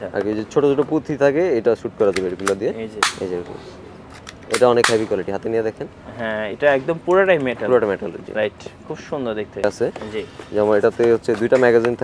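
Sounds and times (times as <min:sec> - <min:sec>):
sharp metallic snap: 0:02.1 - 0:03.4, 0:04.2 - 0:05.2.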